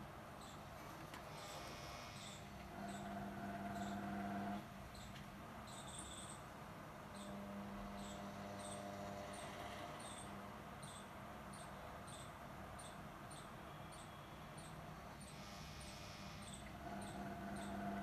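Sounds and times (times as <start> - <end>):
low electrical hum: 0.0 - 18.0.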